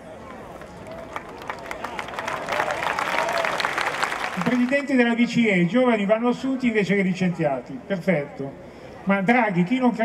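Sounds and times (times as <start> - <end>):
crowd applauding: 0.5 - 4.9.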